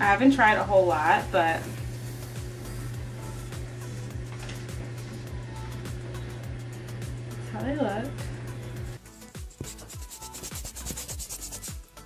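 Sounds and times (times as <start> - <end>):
background music with low beat: 1.8 - 12.0
brush strokes rubbing: 9.2 - 11.8.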